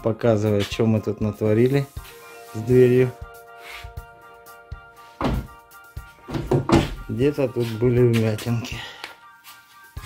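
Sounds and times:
background music: 0:00.0 - 0:10.0
car door shutting: 0:05.2 - 0:05.6.

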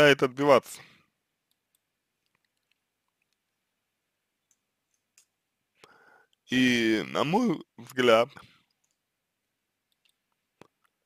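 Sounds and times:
faint small clicks: 0:01.4 - 0:03.5, 0:04.4 - 0:06.4, 0:08.4 - 0:09.1, 0:09.8 - 0:11.0.

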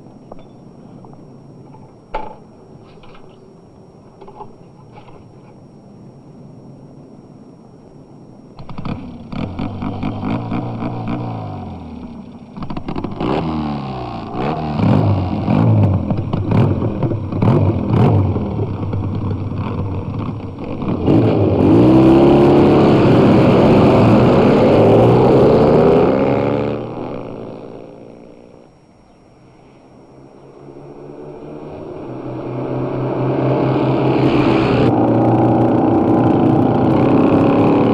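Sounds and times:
motorcycle engine stuttering: 0:08.6 - 0:28.6, 0:30.4 - 0:37.9.

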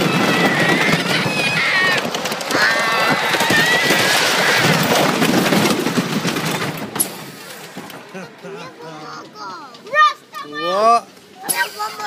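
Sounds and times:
child screaming: 0:00.0 - 0:04.9
loud rushing noise: 0:00.0 - 0:08.2
roller coaster clattering on track: 0:00.0 - 0:12.0.

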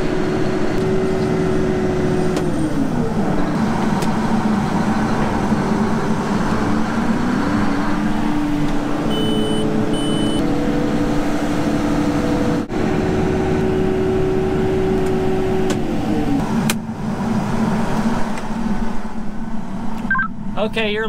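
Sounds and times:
combine machine drone: 0:00.0 - 0:11.2.

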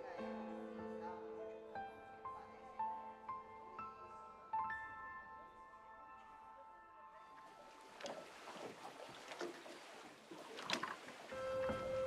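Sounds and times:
water lapping against boats: 0:07.2 - 0:12.0.

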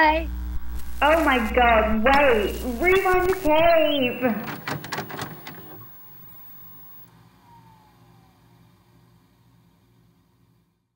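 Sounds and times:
static crackling and hiss: 0:00.0 - 0:07.1
faint low hum: 0:00.0 - 0:10.6.

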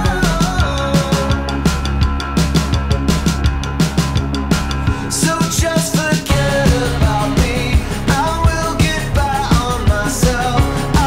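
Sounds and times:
person singing: 0:00.0 - 0:02.0, 0:04.8 - 0:11.0
bass: 0:00.0 - 0:11.0
drums: 0:00.0 - 0:11.0
guitars: 0:00.0 - 0:11.0.

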